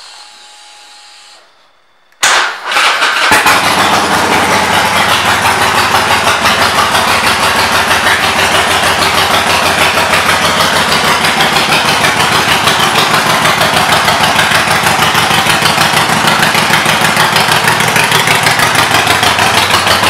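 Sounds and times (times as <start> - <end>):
motorcycle engine idling: 3.2 - 20.0.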